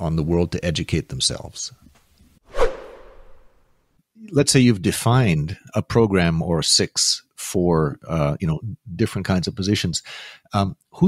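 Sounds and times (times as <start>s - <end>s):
whoosh sweeping downward: 2.5s - 3.7s.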